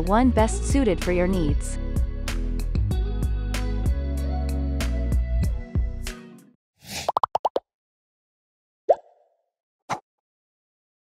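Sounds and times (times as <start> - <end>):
cartoon pops: 7.0 - 7.6.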